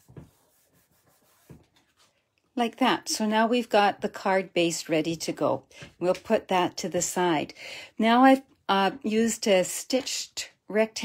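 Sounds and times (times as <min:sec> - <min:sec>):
paper rubbing: 0:00.0 - 0:02.2.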